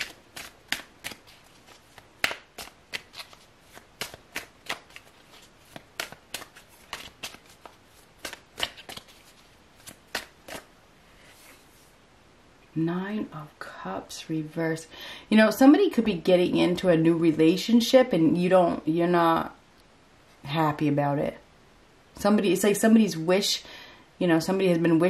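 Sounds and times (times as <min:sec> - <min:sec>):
cards being shuffled: 0:00.0 - 0:10.7.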